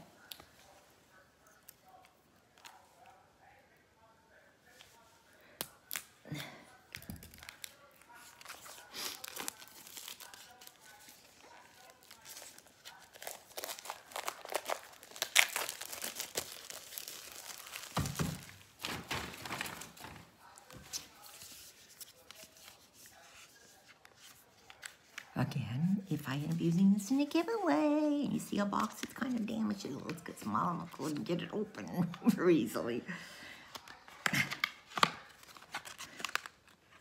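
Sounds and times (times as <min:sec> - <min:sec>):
plastic wrap crinkling and tearing: 0:06.9 - 0:25.3, 0:33.7 - 0:37.0.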